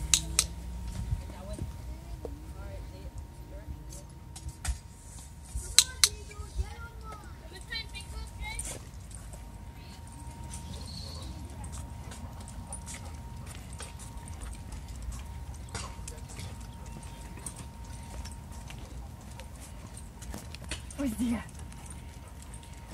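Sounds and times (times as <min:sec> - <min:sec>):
dog claws clicking on pavement: 0:00.0 - 0:00.6, 0:05.5 - 0:09.4, 0:10.5 - 0:22.9
footsteps on concrete: 0:00.0 - 0:22.9.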